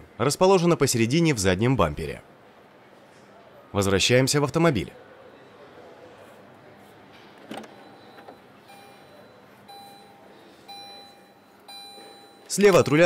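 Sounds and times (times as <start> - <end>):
car warning chime beeping: 7.6 - 13.0.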